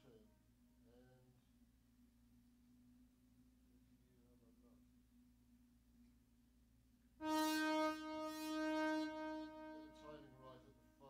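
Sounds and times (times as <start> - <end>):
sustained synthesizer tone: 7.2 - 10.8.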